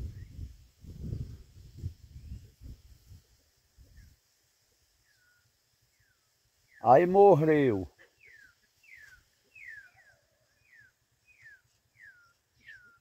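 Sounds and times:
bird whistled calls: 8.2s - 13.0s.

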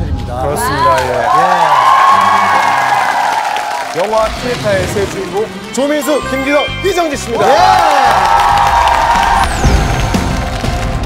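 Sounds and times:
background music: 0.0s - 11.0s
people cheering and whooping: 0.4s - 4.4s, 7.4s - 10.6s.

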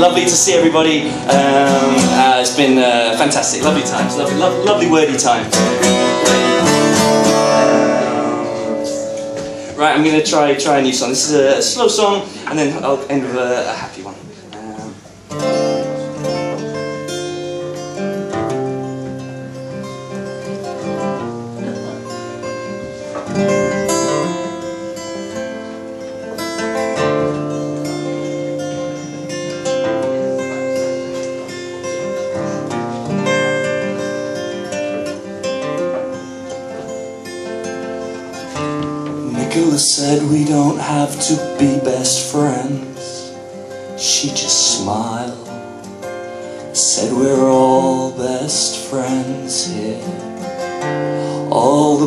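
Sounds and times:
solo acoustic guitar: 0.0s - 13.2s, 14.1s - 52.0s.

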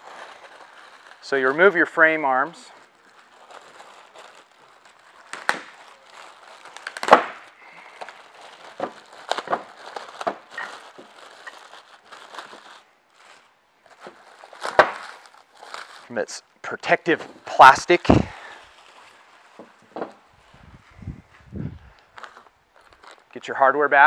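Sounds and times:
plastic wrapping crinkling: 0.0s - 23.4s.

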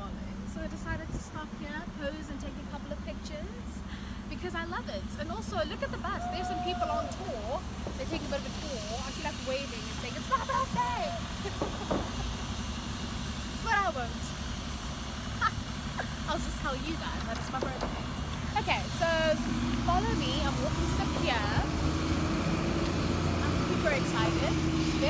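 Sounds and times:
bus engine rumbling: 0.0s - 25.0s
voices: 0.0s - 25.0s.

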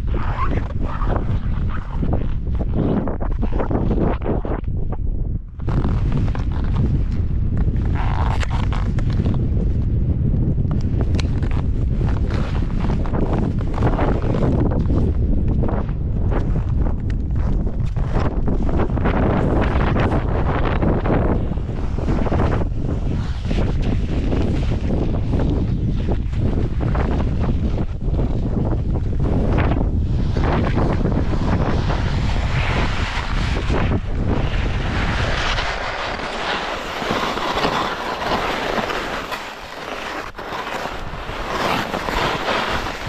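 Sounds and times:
wind buffeting microphone: 0.0s - 43.0s
skis scraping on snow: 5.6s - 9.8s, 11.1s - 15.2s, 17.4s - 43.0s.

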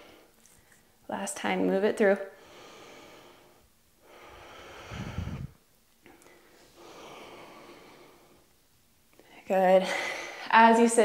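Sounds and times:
woman breathing audibly: 0.0s - 0.9s, 2.3s - 10.5s.

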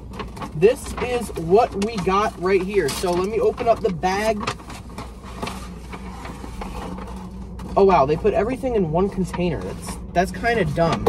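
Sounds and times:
low hum inside car: 0.0s - 11.0s.

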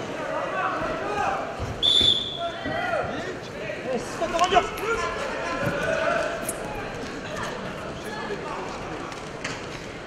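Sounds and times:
voices in arena: 0.0s - 10.0s
referee's whistle blast: 1.8s - 2.4s.

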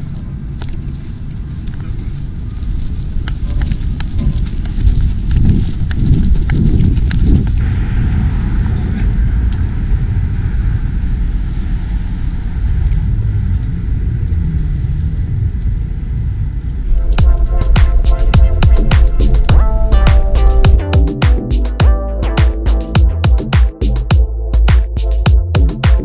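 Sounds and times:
wind rumbling on microphone: 0.0s - 21.2s.

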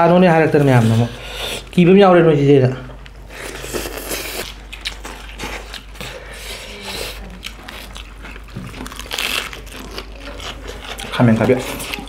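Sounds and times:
chewing and crunching cabbage: 3.3s - 12.0s.

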